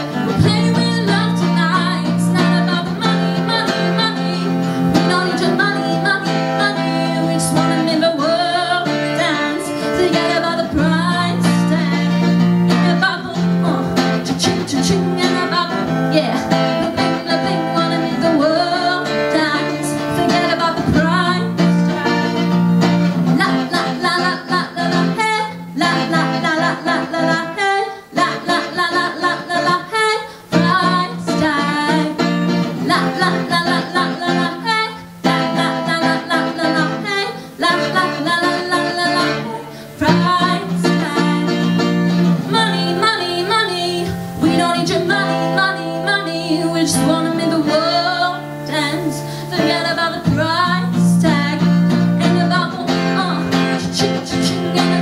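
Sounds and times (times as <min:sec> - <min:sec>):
strummed acoustic guitar: 0:00.0 - 0:55.0
woman singing pop song: 0:00.0 - 0:55.0.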